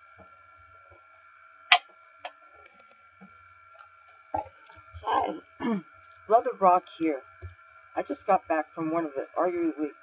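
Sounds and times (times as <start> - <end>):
faint high hum: 0.0 - 10.0.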